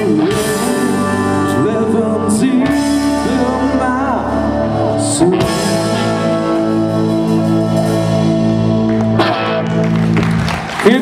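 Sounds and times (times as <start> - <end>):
man singing: 0.0 - 8.2
bass guitar: 0.0 - 11.0
distorted electric guitars: 0.0 - 11.0
drum kit: 0.0 - 11.0.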